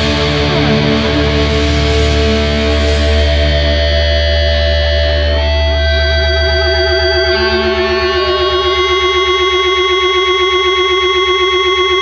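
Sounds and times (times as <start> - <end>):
fast low pulse: 0.0 - 11.8
distorted guitar tones: 0.0 - 12.0.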